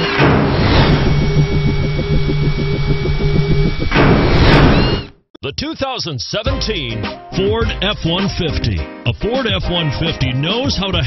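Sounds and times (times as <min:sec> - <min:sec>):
pulsing low drone: 0:00.1 - 0:05.1.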